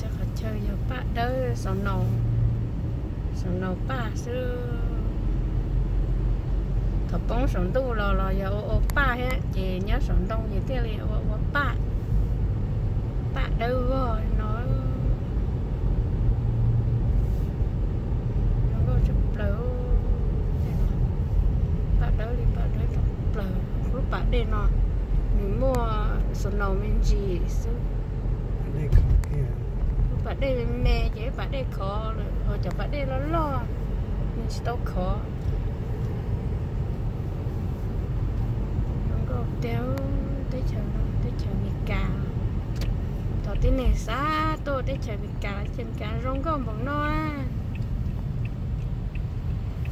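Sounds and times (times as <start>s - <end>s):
car road and engine rumble: 0.0s - 49.9s.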